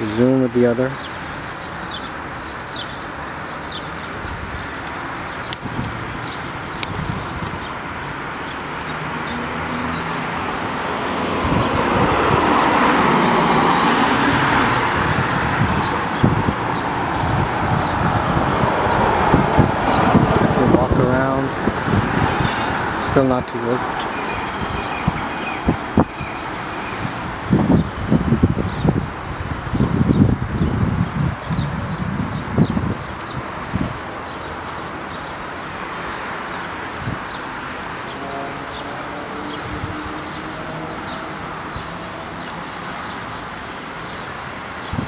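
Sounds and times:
road traffic: 0.0 - 45.0.

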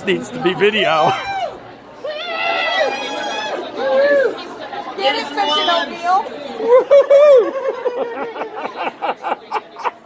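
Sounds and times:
people chattering and calling out: 0.0 - 10.0.

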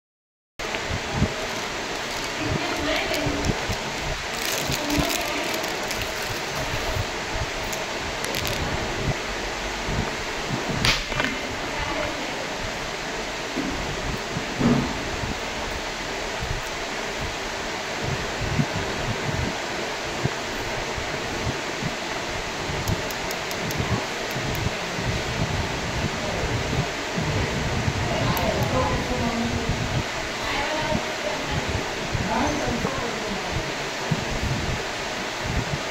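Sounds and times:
room noise hiss: 0.6 - 35.9
syringe and vial clicks and rustles: 1.4 - 8.7, 22.8 - 24.7.

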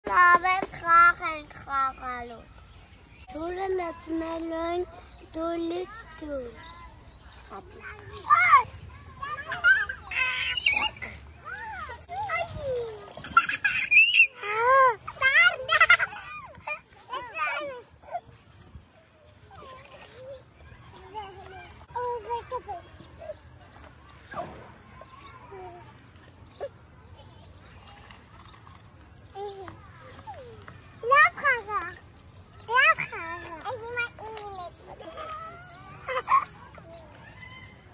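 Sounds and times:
children calling and squealing: 0.0 - 37.9.

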